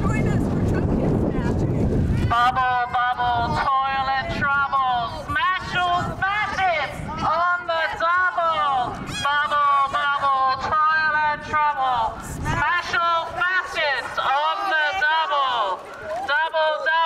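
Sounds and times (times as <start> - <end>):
person talking through megaphone: 2.2 - 17.0.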